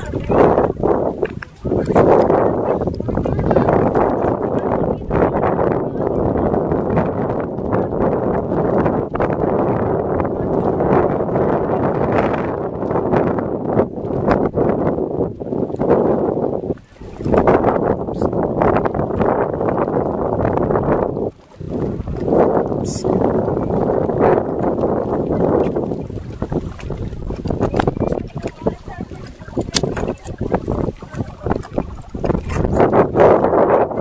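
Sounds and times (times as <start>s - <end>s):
wind buffeting microphone: 0.0s - 34.0s
indistinct voices talking: 26.4s - 34.0s.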